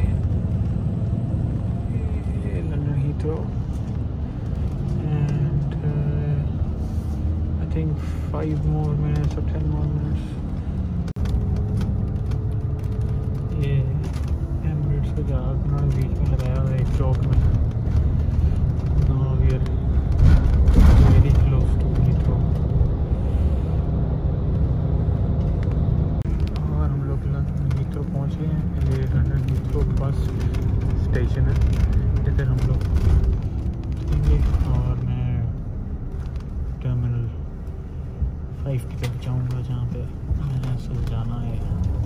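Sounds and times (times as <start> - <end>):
bus engine and road rumble: 0.0 - 42.0.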